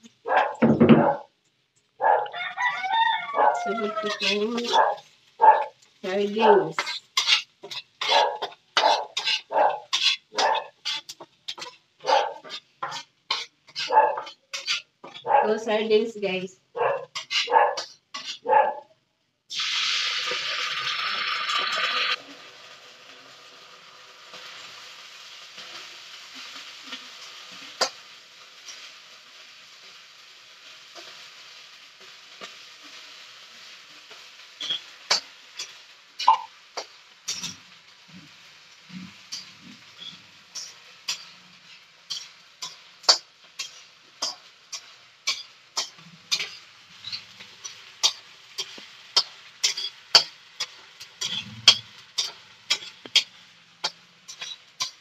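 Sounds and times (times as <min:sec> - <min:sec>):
liquid sizzling in hot wok: 0:00.0 - 0:18.5, 0:19.1 - 0:55.0
dog barking: 0:00.2 - 0:01.3, 0:02.0 - 0:02.4, 0:03.3 - 0:03.7, 0:04.6 - 0:05.8, 0:08.0 - 0:10.8, 0:12.0 - 0:12.5, 0:13.8 - 0:14.3, 0:15.1 - 0:15.6, 0:16.7 - 0:18.9
rooster crowing: 0:02.0 - 0:04.5.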